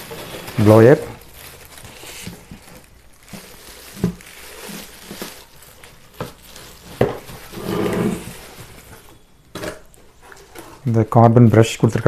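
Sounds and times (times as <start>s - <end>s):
plastic wrapping rustling: 0.0s - 12.0s.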